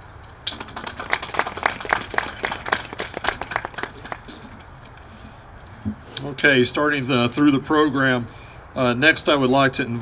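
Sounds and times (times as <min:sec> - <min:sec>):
audience applauding: 0:00.5 - 0:04.3.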